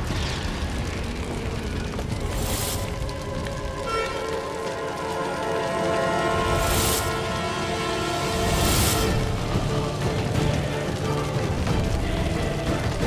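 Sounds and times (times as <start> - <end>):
dramatic background music: 0.0 - 13.0
low rumbling fire: 0.0 - 13.0
rushing swell: 4.4 - 10.8.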